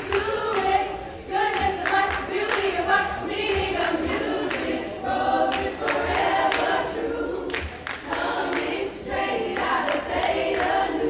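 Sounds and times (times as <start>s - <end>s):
women singing a cappella: 0.0s - 11.0s.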